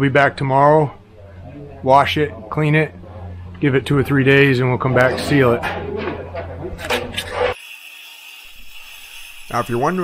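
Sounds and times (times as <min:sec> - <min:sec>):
voice: 0:00.0 - 0:06.2, 0:09.5 - 0:10.0
concrete saw running with whine: 0:07.2 - 0:10.0.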